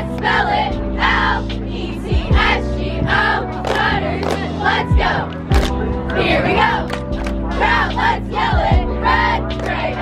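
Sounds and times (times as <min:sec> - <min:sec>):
music with deep bass beat: 0:00.0 - 0:10.0.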